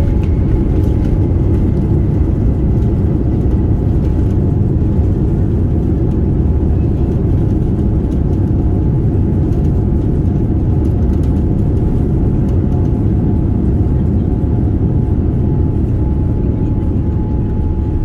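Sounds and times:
aircraft cabin rumble: 0.0s - 18.0s.

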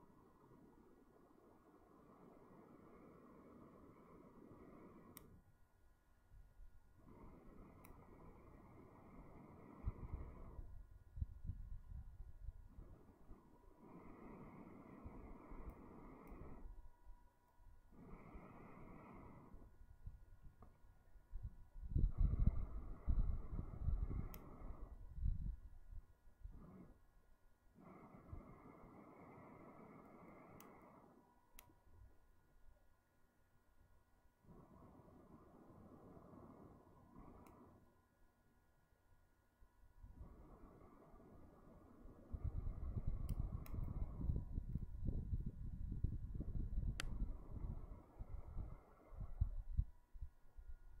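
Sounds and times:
breath blowing into tinder: 0.4s - 5.4s, 7.0s - 16.8s, 17.9s - 20.4s, 21.3s - 27.1s, 27.7s - 31.2s, 34.4s - 37.9s, 40.0s - 49.8s
person blowing long breath: 17.9s - 19.8s.

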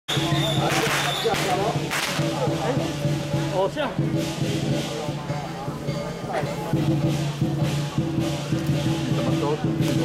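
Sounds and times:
shrill whistle: 0.1s - 1.5s
crowd voices: 0.1s - 10.0s.

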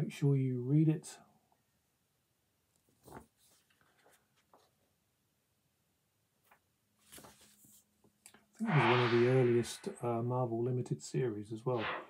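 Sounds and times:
paper handling: 7.0s - 7.8s.

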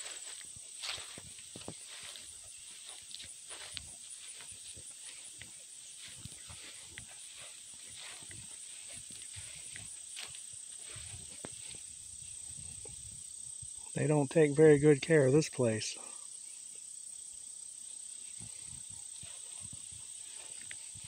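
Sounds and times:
soft footsteps on grass: 0.0s - 13.4s, 18.1s - 21.0s
insects chirping: 0.0s - 21.0s.

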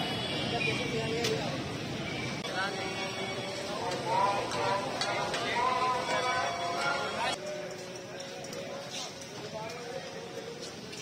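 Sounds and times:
indistinct background voices: 2.4s - 11.0s.

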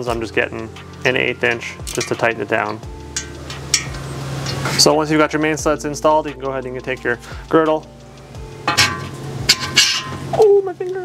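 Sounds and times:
ratchet metallic clicks: 0.9s - 5.5s.

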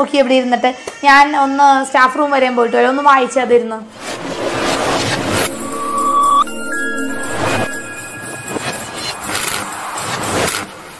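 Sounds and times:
whoosh sound effects: 3.9s - 9.0s.

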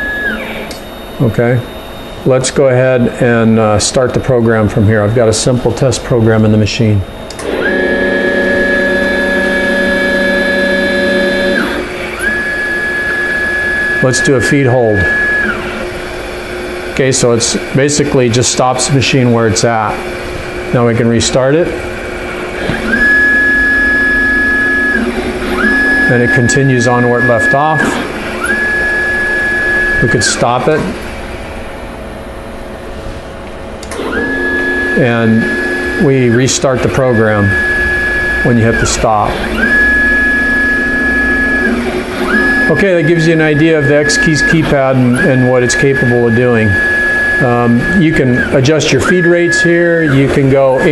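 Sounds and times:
mechanical hum and hiss: 0.0s - 50.9s
milling machine motors whining: 0.0s - 50.9s.

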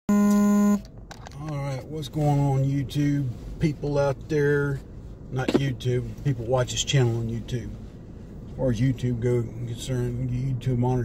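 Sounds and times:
electronic buzzing beep: 0.1s - 0.8s.

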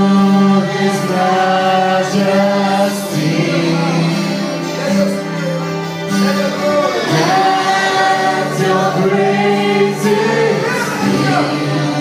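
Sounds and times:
group singing worship song: 0.0s - 5.2s, 6.9s - 12.0s.

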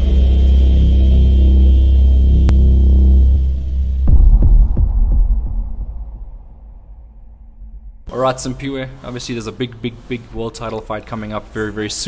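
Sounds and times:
deep rumbling drone: 0.0s - 8.2s
heavy cinematic hit with echoes: 0.0s - 8.2s.

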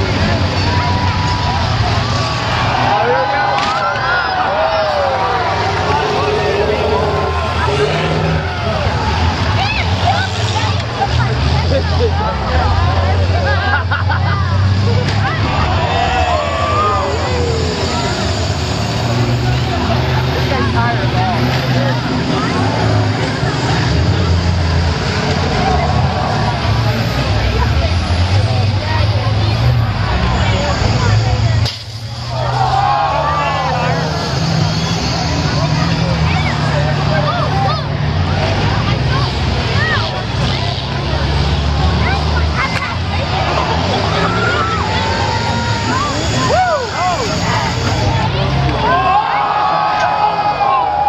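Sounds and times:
bus engines running hard: 0.0s - 51.0s
crowd shouting and cheering: 0.0s - 51.0s.

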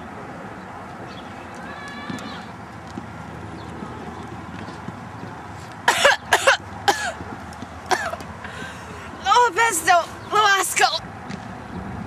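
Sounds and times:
woman coughing: 5.9s - 7.2s, 7.9s - 8.2s.

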